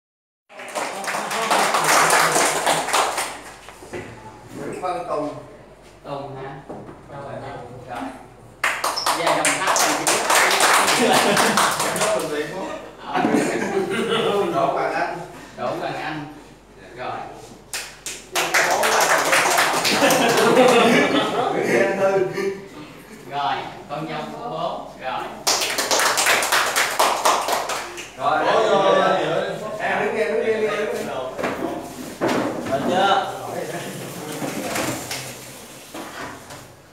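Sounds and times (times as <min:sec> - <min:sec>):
small group clapping: 0:00.5 - 0:03.9, 0:08.6 - 0:12.5, 0:17.7 - 0:21.3, 0:25.4 - 0:28.2, 0:34.7 - 0:35.4.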